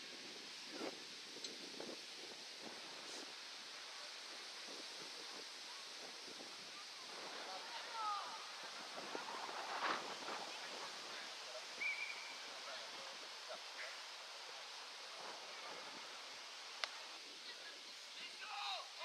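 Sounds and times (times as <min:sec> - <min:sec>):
wind hiss: 0:00.0 - 0:19.0.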